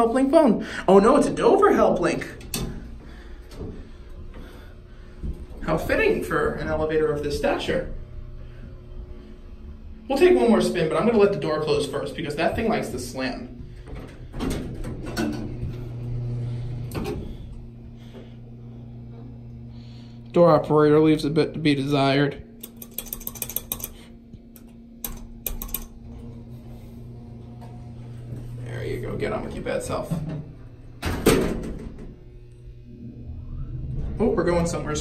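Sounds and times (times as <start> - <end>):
elevator door operator humming: 1.1 - 20.3, 21.8 - 35.0
elevator door slamming shut: 31.0 - 32.2.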